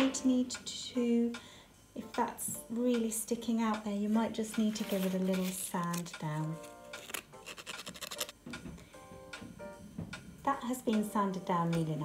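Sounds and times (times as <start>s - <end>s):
faint handling noise: 4.1s - 8.6s.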